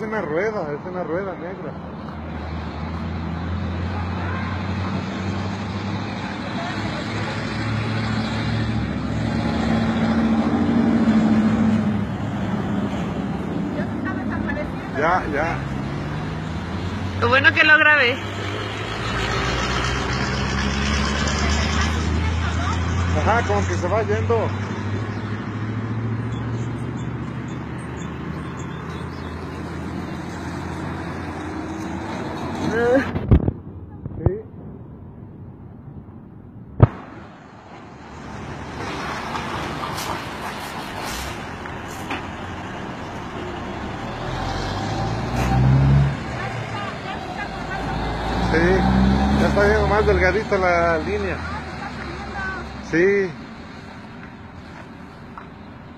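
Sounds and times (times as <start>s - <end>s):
low rumble of motor vehicles: 0.0s - 55.9s
road traffic passing: 0.0s - 55.9s.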